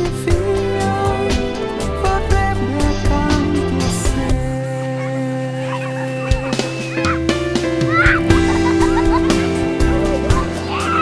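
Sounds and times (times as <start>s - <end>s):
music with long held notes: 0.0s - 11.0s.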